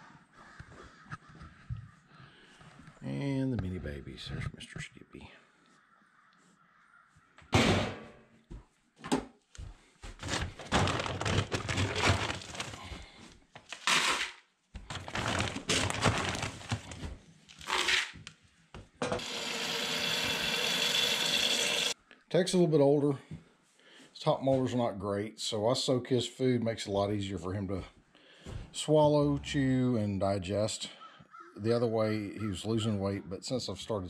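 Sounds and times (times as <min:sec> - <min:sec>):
feed poured into plastic buckets: 0:10.2 - 0:13.0, 0:13.8 - 0:18.1, 0:19.2 - 0:22.0
faucet running into bucket: 0:19.2 - 0:22.0.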